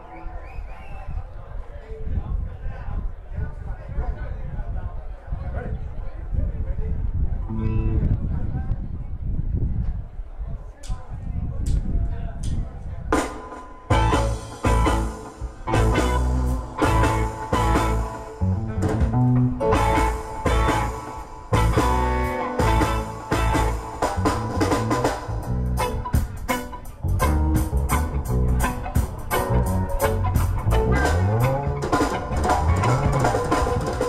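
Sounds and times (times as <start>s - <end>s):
reggae band playing: 13.1s - 34.0s.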